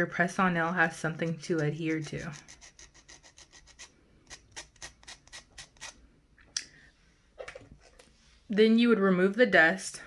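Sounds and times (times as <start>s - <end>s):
nail buffer rubbing fingernail: 1.2s - 6.0s.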